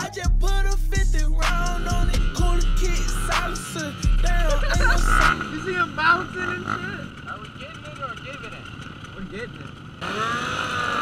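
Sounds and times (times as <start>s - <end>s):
music: 0.0s - 5.3s
dirt bike engines running: 0.0s - 11.0s.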